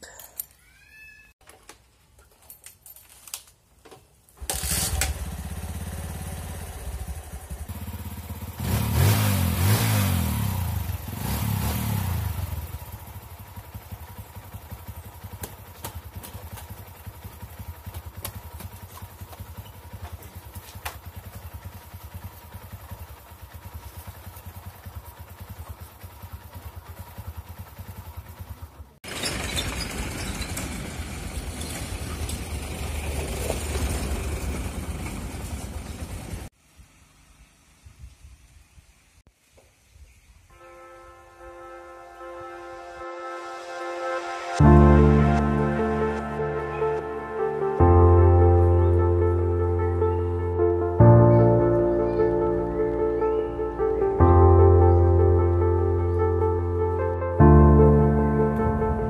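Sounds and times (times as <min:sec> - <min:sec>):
motorcycle engine revving and idling: 0:04.4 - 0:36.5
vehicle engine running: 0:04.5 - 0:37.7, 0:44.4 - 0:59.0.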